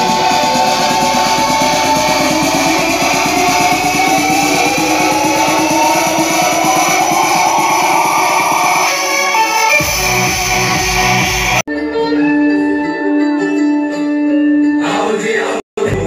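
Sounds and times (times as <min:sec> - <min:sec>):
fast drum beat: 0:00.0 - 0:08.8
loud music with guitar: 0:00.0 - 0:15.2.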